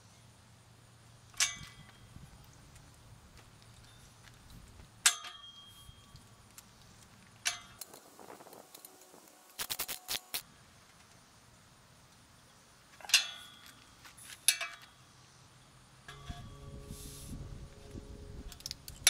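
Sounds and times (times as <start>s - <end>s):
quick metal clicks: 6.0s - 10.4s
ringing metal knocks: 16.1s - 17.0s.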